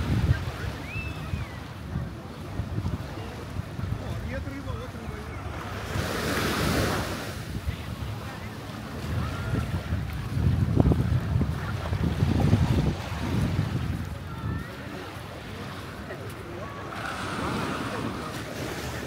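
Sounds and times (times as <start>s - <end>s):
small waves washing on beach: 0.0s - 19.0s
wind buffeting microphone: 0.0s - 19.0s.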